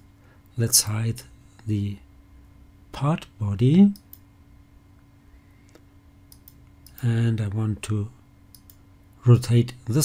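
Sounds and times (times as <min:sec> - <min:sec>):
low steady hum: 0:00.0 - 0:10.0
computer mouse clicks: 0:04.0 - 0:04.3, 0:05.7 - 0:07.1, 0:08.5 - 0:08.8.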